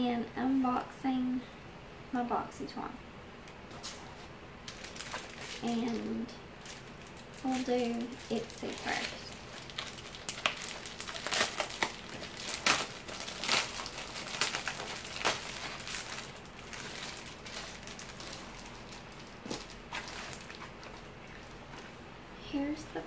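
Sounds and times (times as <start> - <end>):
plastic mailer crinkling: 4.6 - 22.0.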